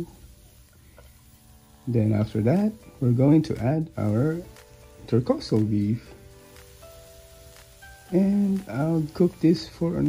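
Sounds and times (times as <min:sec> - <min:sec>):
man speaking: 0:05.1 - 0:06.1, 0:08.1 - 0:10.0.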